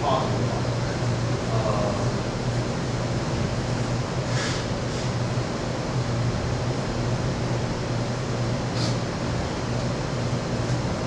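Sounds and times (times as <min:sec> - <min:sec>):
room tone hum and hiss: 0:00.0 - 0:11.0
brief soft hissing: 0:08.8 - 0:09.0.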